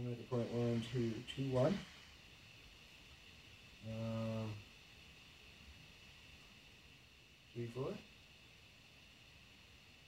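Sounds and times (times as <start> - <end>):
faint steady hiss: 0.0 - 10.0
man saying um: 3.8 - 4.6.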